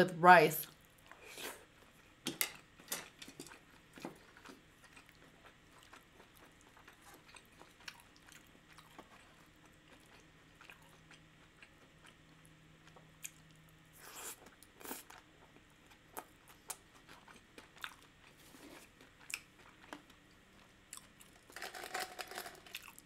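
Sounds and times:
person chewing soft food: 0.8 - 21.4.

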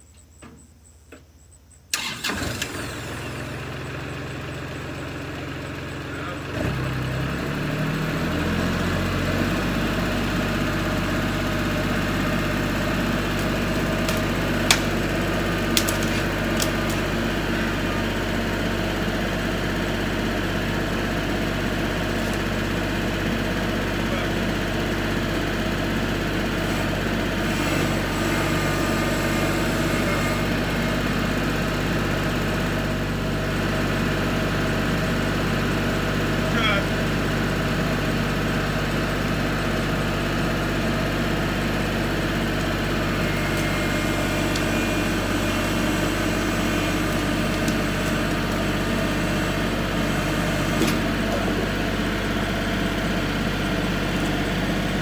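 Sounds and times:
tractor diesel engine idling: 1.9 - 55.0.

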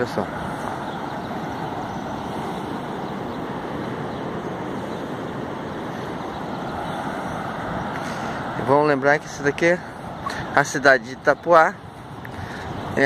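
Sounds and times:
ocean surf breaking on beach: 0.0 - 13.0.

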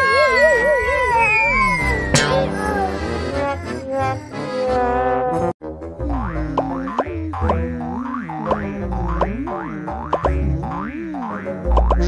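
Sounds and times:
cartoon music with pulsing bass: 0.0 - 12.0
springy boing sound effects: 6.0 - 12.0.

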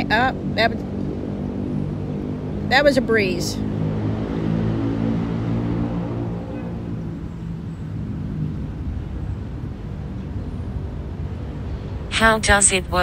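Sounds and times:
low layered hum drone: 0.0 - 12.3.

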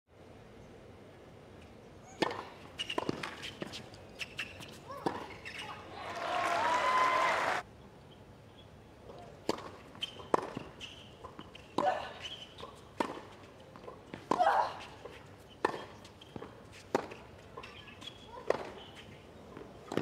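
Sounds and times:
tennis ball bouncing: 2.2 - 5.7, 9.4 - 20.0
rackets striking tennis ball: 9.4 - 12.0, 19.6 - 20.0.

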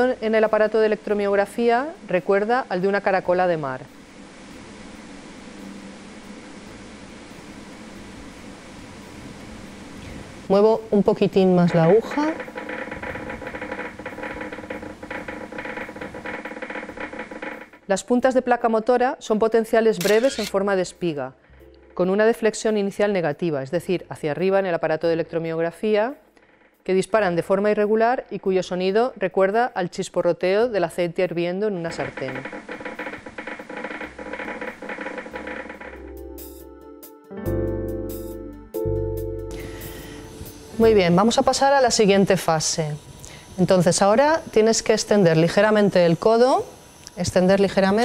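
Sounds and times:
irregular crackling from loudspeaker: 11.0 - 17.9, 31.8 - 36.1.

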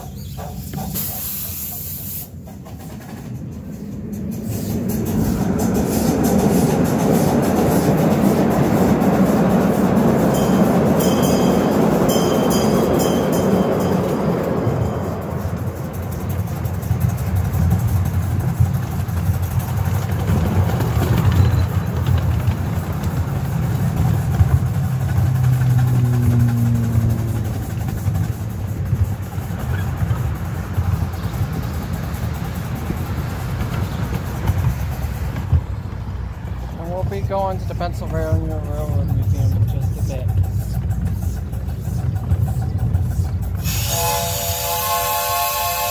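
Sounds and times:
wheel clicks on rails: 0.0 - 44.3
miniature train wheels rumbling: 0.0 - 45.9.

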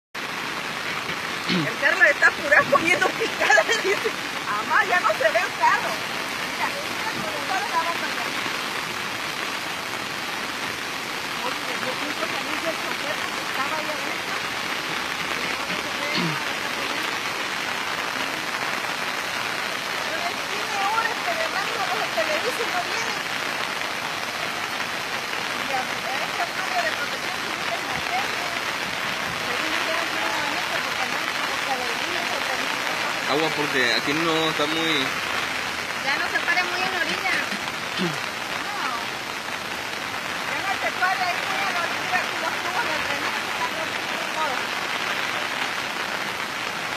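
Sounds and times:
rain: 0.2 - 46.9
running water: 0.2 - 46.9.

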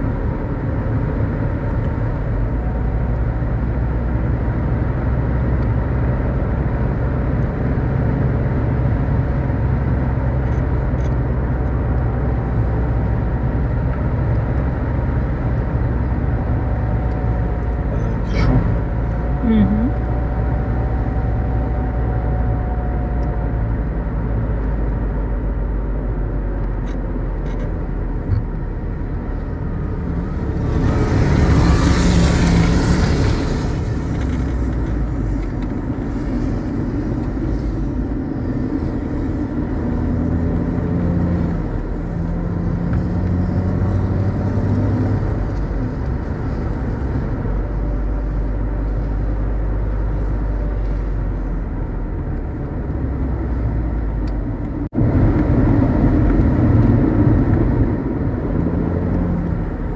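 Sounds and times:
car engine hum: 0.0 - 59.9.

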